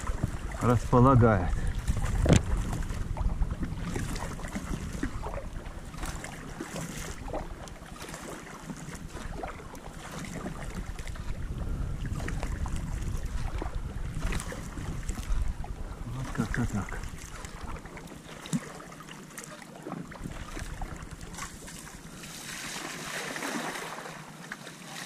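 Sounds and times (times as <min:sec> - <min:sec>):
wind rumble on microphone: 0:00.0 - 0:18.6, 0:20.0 - 0:23.0
paddle strokes splashing: 0:00.0 - 0:25.0.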